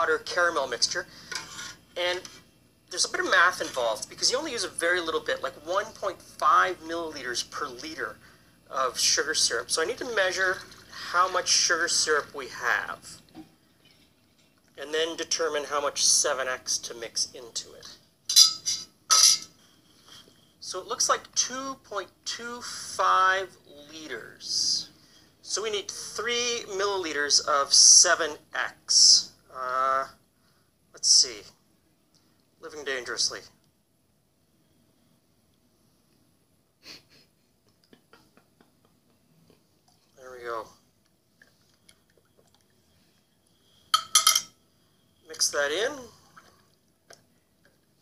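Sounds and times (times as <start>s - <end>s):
metal pot clinking: 18.3s - 19.6s, 43.9s - 44.6s.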